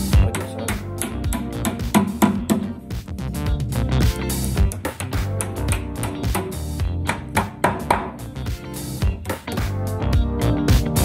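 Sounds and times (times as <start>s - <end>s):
guitar music with steady beat: 0.0s - 11.0s.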